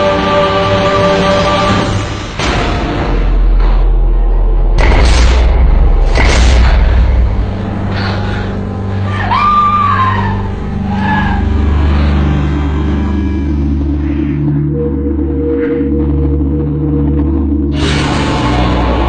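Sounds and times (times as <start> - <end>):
deep sustained drone: 0.0 - 19.0.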